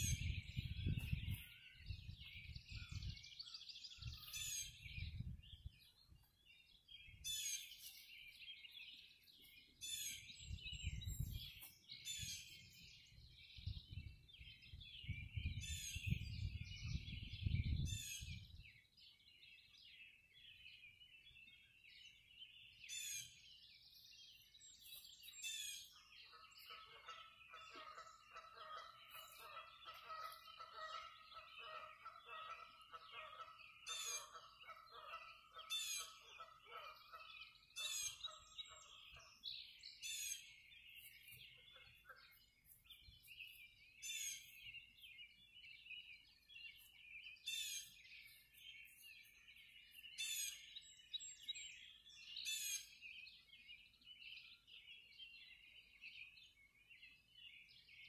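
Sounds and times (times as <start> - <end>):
songbirds chirping and singing: 0.0 - 58.0
rapidly pulsed bird call: 22.8 - 57.4.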